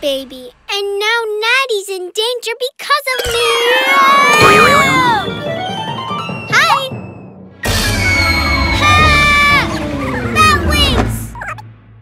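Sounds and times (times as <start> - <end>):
warbling cries: 3.4 - 5.4, 7.7 - 10.7
descending cartoon whistle: 7.1 - 10.2.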